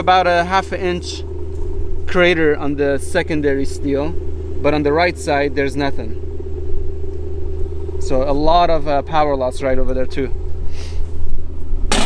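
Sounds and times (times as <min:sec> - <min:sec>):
constant hum: 0:00.0 - 0:12.0
low rumble: 0:00.0 - 0:12.0.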